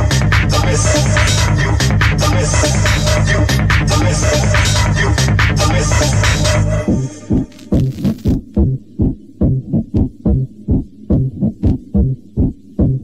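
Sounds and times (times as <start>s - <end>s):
kick drum pounding: 7.3s - 13.0s.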